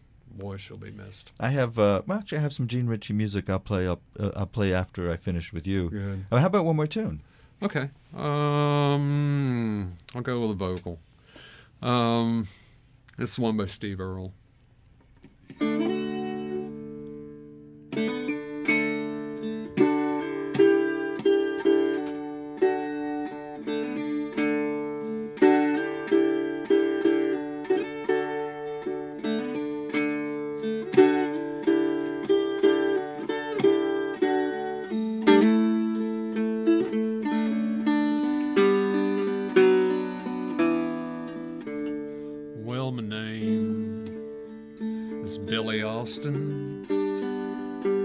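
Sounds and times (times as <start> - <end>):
dulcimer picked melody: 15.6 - 48.0
dulcimer chord ringing: 18.0 - 48.0.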